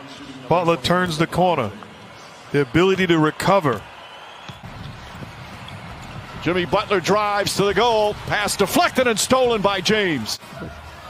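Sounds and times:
basketball arena ambience: 0.0 - 11.0.

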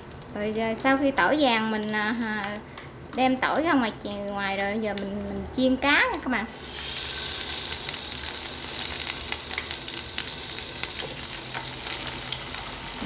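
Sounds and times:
fish sizzling in hot oil: 6.5 - 13.0.

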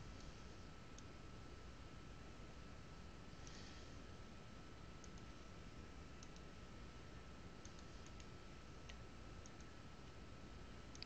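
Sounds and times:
steady low hiss: 0.0 - 11.0
computer mouse clicks: 5.0 - 5.3, 6.2 - 6.5, 7.6 - 9.8.

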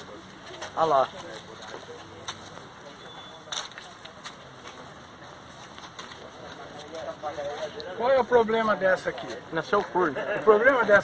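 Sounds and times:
faint murmur of voices: 0.0 - 11.0
outdoor background hiss: 0.0 - 11.0.

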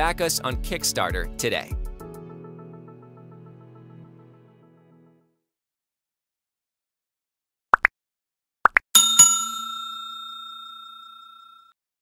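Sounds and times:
bell ding: 9.0 - 11.7.

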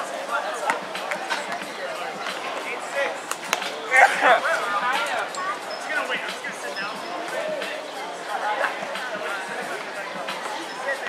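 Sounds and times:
players calling out: 0.2 - 11.0.

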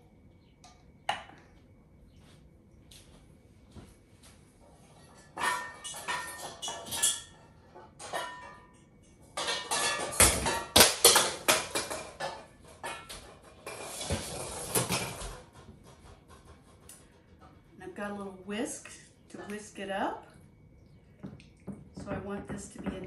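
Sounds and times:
utensils knocking and clattering: 4.9 - 17.6, 21.2 - 23.0
metal utensils clinking: 5.0 - 15.2.

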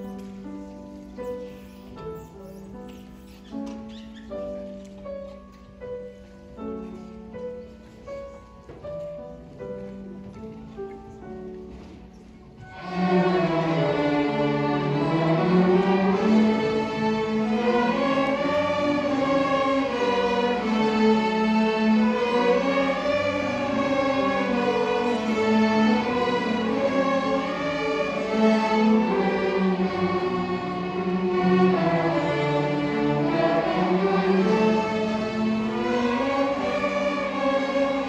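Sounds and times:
string orchestra sustained chords: 12.6 - 38.0.

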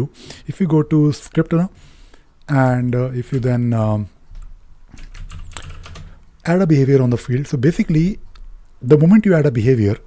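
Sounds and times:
keyboard typing: 4.4 - 6.2.

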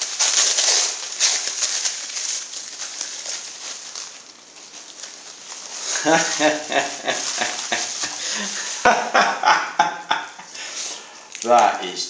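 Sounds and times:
plastic wrapping crinkling: 0.0 - 12.0.

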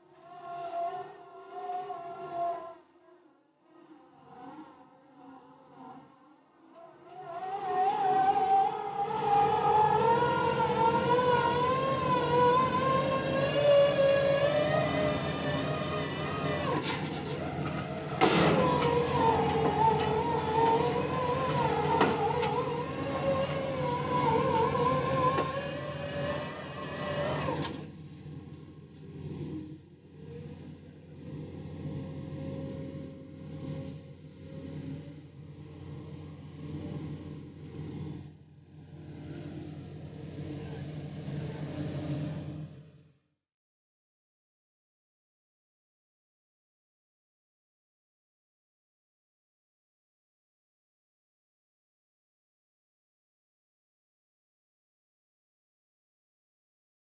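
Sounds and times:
low steady drone: 0.0 - 43.1
piling rig engine whine: 7.2 - 42.8.

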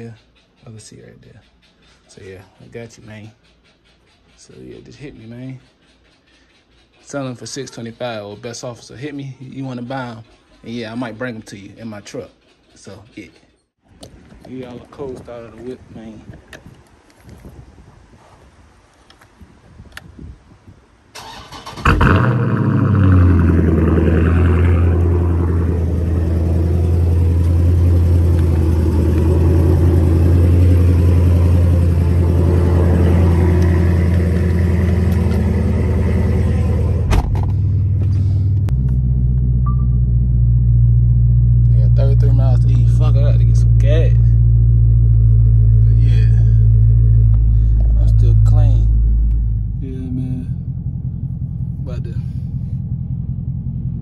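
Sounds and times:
car engine starting and idling: 21.1 - 54.0.

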